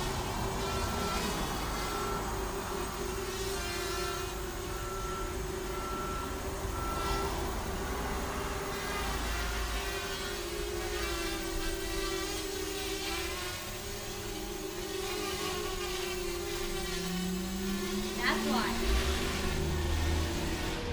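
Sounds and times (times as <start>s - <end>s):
quadcopter motors whining: 0.0s - 20.9s.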